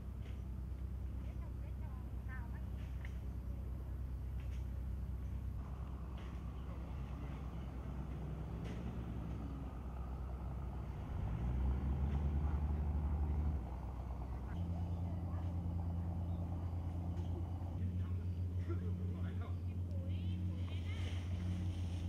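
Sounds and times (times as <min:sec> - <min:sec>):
vehicle engine running and revving: 0:02.8 - 0:22.0.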